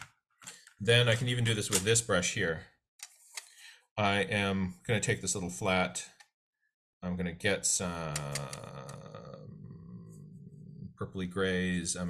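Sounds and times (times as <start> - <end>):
man humming low: 8.2 - 11.0.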